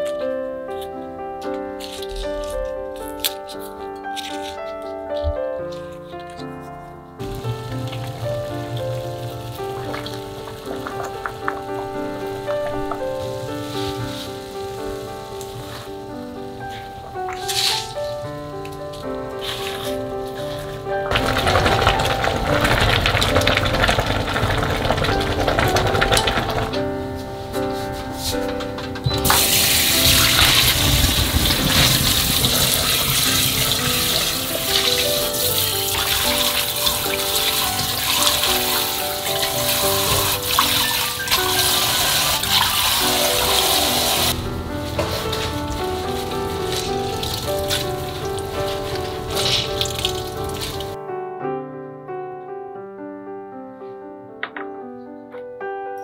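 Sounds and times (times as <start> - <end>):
soft piano music: 0.0 - 56.0
tap water running into basin: 7.2 - 15.9, 20.5 - 26.8, 29.2 - 51.0
water boiling in pot: 7.2 - 18.0, 19.4 - 26.9, 29.2 - 51.0.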